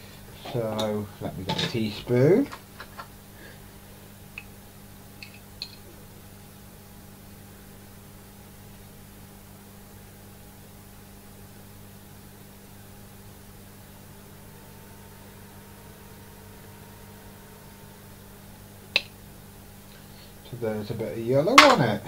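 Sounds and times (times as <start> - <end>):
steady hiss: 0.0 - 22.0
low hum: 3.2 - 21.4.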